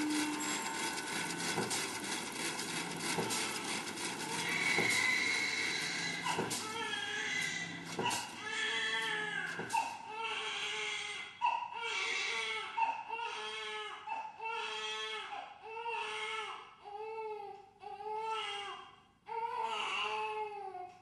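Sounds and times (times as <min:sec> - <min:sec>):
baby crying: 0:04.4 - 0:20.9.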